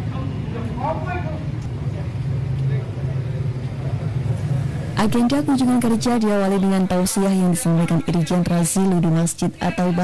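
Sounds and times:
people talking indistinctly: 0:04.3 - 0:10.0.

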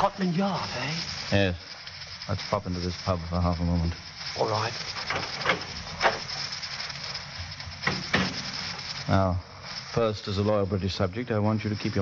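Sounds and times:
radio broadcast hiss: 0:00.0 - 0:12.0.

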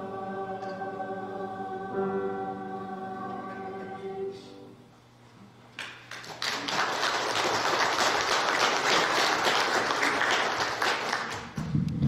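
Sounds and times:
many hands clapping: 0:05.8 - 0:11.8.

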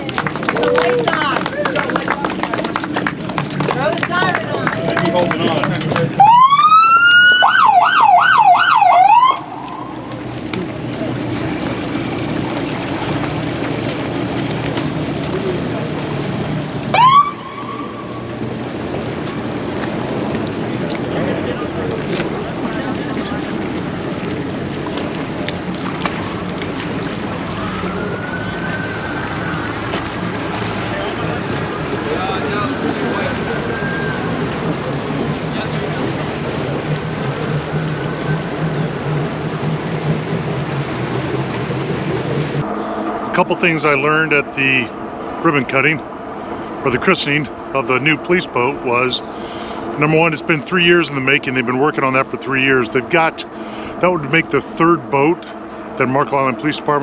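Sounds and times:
boat siren wailing: 0:00.0 - 0:57.0
low engine hum: 0:00.0 - 0:57.0
water noise: 0:00.0 - 0:57.0.

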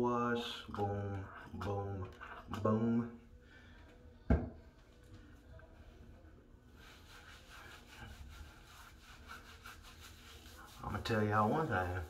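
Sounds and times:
hands rubbing wet beard: 0:06.7 - 0:12.0.

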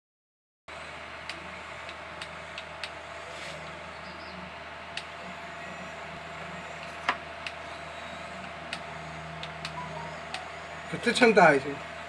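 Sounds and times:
faint steady hum: 0:00.7 - 0:12.0.

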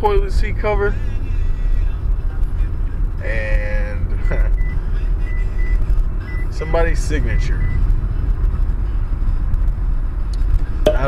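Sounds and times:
road rumble inside car: 0:00.0 - 0:11.0.

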